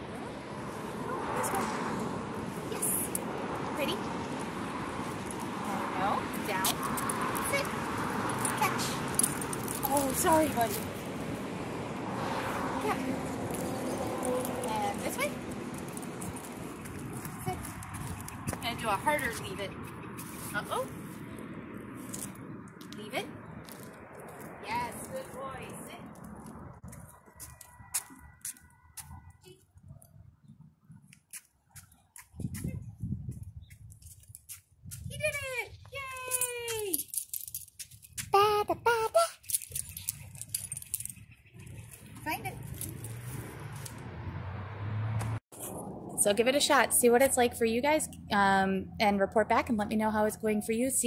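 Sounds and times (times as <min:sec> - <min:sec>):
street background noise: 0:00.0 - 0:51.0
light clicking and jingling: 0:08.2 - 0:10.8, 0:36.1 - 0:38.2, 0:39.2 - 0:43.2.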